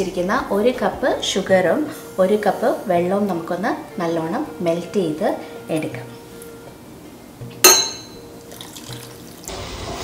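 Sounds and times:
sharp ringing clink: 7.6 - 8.2
water pouring into saucepan: 8.5 - 9.6.

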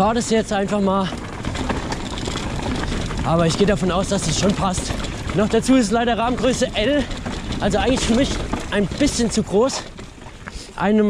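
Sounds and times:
bike knocks and rattles: 0.0 - 11.0
bike tyre rumble: 0.0 - 11.0.

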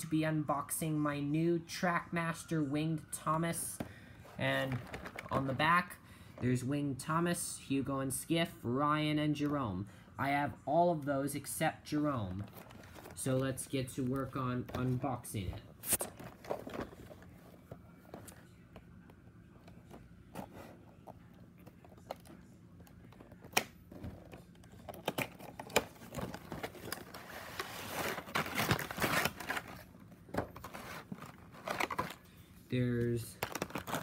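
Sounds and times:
packaging rustling and crinkling: 4.6 - 5.6, 12.4 - 18.6, 23.0 - 32.2, 33.3 - 34.0.

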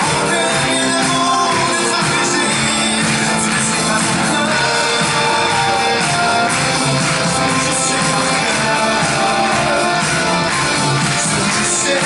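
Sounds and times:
man singing slow melody: 0.0 - 5.8, 11.1 - 12.0
pop-rock band playing: 0.0 - 12.0.

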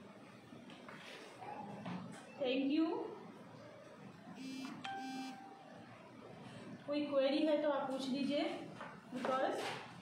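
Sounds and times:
electronic beep: 4.4 - 5.7.

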